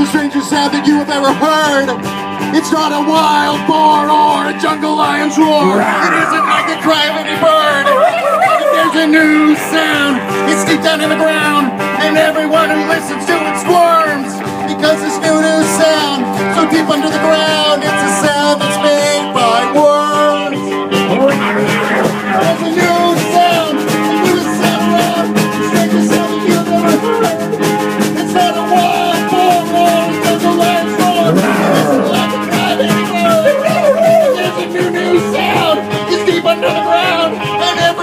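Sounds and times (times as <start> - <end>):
live rock band playing: 0.0 - 38.0
wavering melodic lead line: 18.8 - 37.7.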